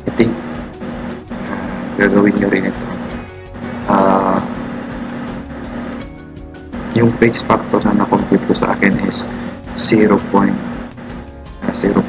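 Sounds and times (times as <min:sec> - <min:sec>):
background music with low tones: 0:00.0 - 0:12.0
bright note: 0:00.1 - 0:12.0.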